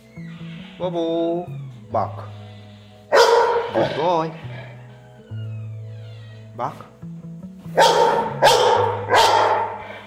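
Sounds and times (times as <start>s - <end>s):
dog barking deeply: 3.1s - 4.4s, 7.7s - 10.0s.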